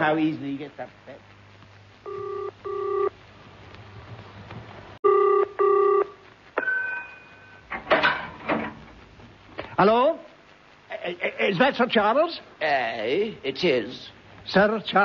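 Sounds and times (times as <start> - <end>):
telephone bell ringing: 2.1 - 3.1, 5.1 - 7.6.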